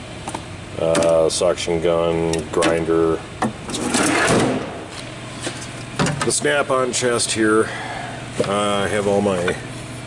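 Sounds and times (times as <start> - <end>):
metal drawer sliding shut: 3.7 - 4.8.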